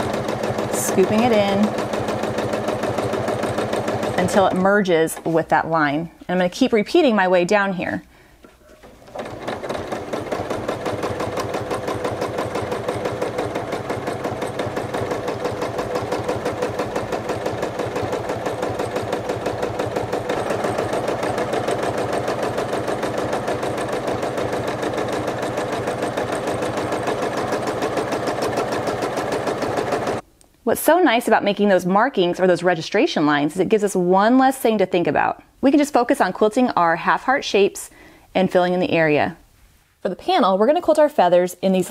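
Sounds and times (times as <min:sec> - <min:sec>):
sewing machine stitching: 0:00.0 - 0:05.5, 0:08.6 - 0:30.2.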